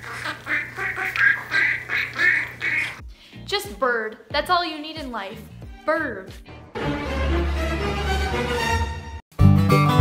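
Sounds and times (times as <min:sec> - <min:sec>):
budgie chirping: 0:00.0 - 0:03.0.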